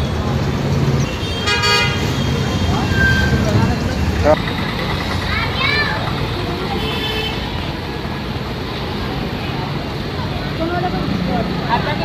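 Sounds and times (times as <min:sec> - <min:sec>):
road traffic rumble: 0:00.0 - 0:12.0
voices of people: 0:00.0 - 0:12.0.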